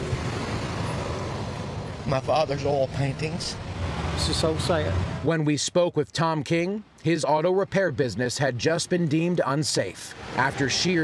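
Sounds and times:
outdoor background rumble and hiss: 0:00.0 - 0:11.0.

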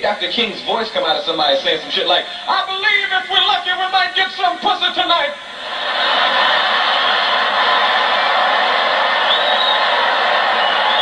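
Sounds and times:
audience laughing: 0:05.5 - 0:11.0
audience applauding: 0:06.2 - 0:11.0.

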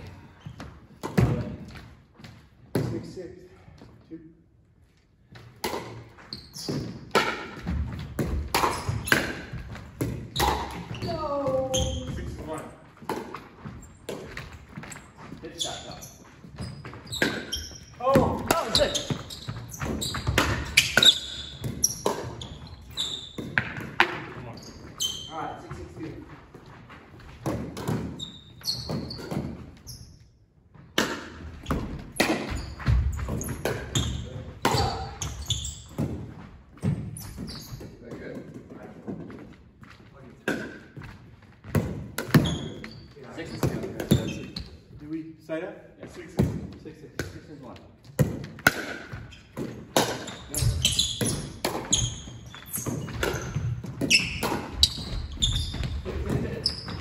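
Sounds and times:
ball bouncing on wooden floor: 0:05.4 - 0:15.5, 0:16.2 - 0:29.7, 0:30.8 - 0:42.9, 0:48.0 - 0:57.0.

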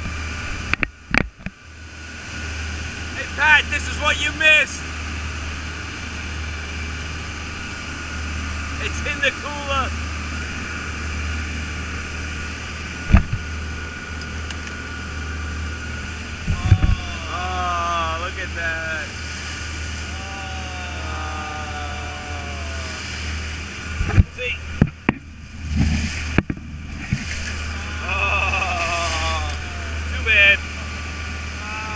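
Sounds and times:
motorboat engines humming: 0:00.0 - 0:31.9
rush of boat wake: 0:00.0 - 0:31.9.

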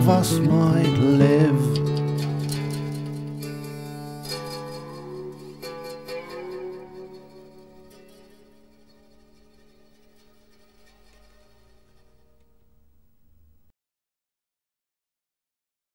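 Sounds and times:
plucked string instrument: 0:00.0 - 0:13.7.

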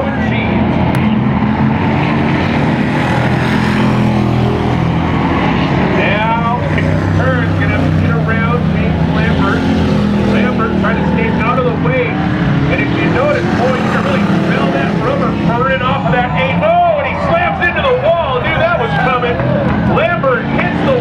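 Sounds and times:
man talking: 0:06.0 - 0:21.0.

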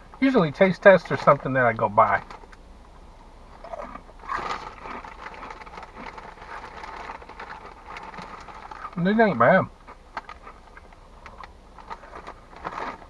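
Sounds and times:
chewing crunchy snacks: 0:03.6 - 0:09.0, 0:09.8 - 0:13.0.

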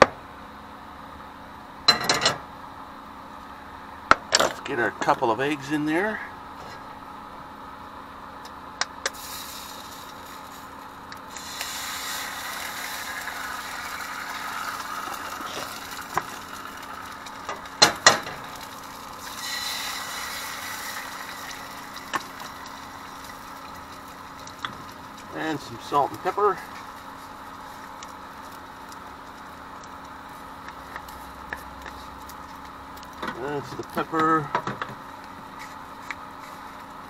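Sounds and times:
steady low hum: 0:00.0 - 0:37.0
eggs sizzling in a pan: 0:09.0 - 0:33.2.

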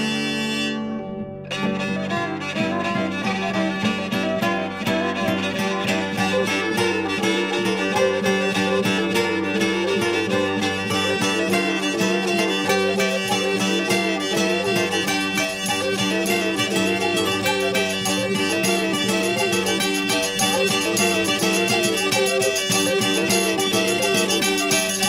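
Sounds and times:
bowed fiddle melody: 0:00.0 - 0:25.0
plucked strings: 0:00.0 - 0:25.0.

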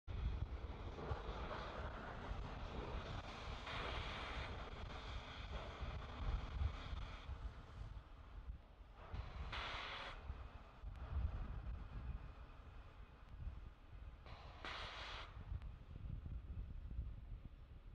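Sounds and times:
hiss: 0:00.3 - 0:07.8, 0:09.0 - 0:10.3, 0:14.3 - 0:15.4
wind buffeting microphone: 0:10.2 - 0:14.4, 0:15.4 - 0:17.9.

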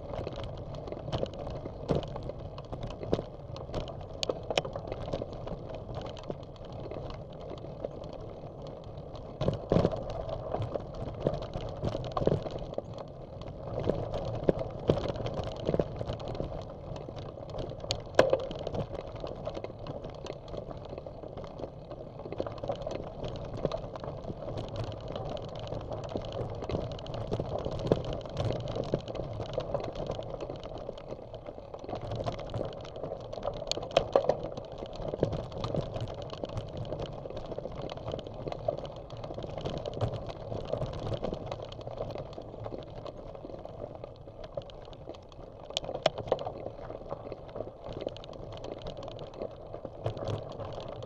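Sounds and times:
bicycle tyres crunching on gravel: 0:00.0 - 0:51.0
bike rattling: 0:00.0 - 0:51.0.

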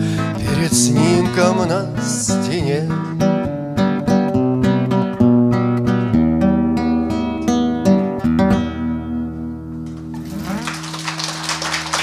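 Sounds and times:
audience applause: 0:10.2 - 0:12.0.

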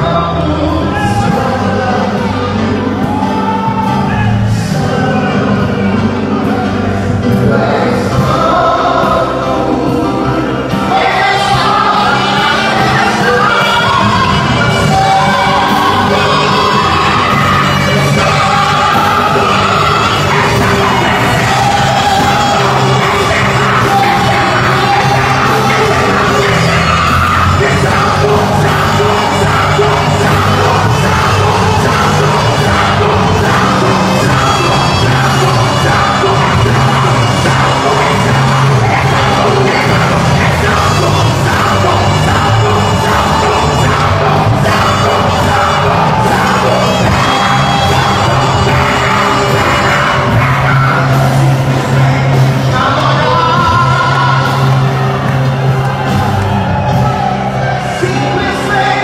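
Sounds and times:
man singing into a microphone: 0:00.0 - 0:56.0, 0:57.6 - 0:59.0
band with drums and bass: 0:00.0 - 0:59.0
congregation yelling and cheering: 0:00.0 - 0:59.0.

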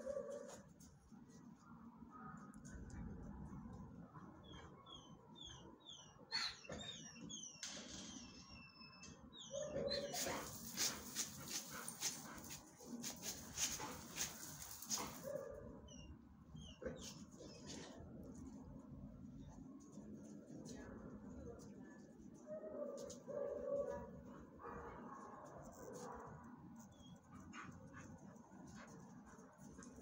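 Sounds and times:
dog high chirps: 0:09.5 - 0:10.9
dog rough rasping noise: 0:10.0 - 0:15.3.

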